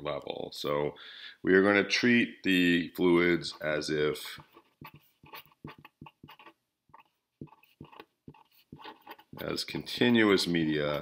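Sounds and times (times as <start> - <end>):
marker scratching on paper: 3.5 - 9.6.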